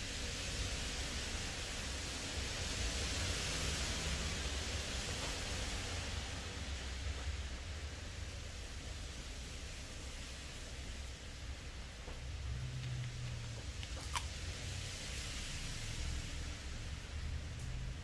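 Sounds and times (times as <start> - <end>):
heavy rain falling: 0.0 - 18.0.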